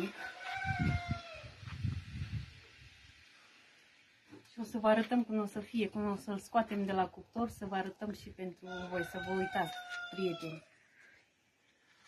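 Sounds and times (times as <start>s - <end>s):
rooster crowing: 0.0s - 1.5s, 8.7s - 10.7s.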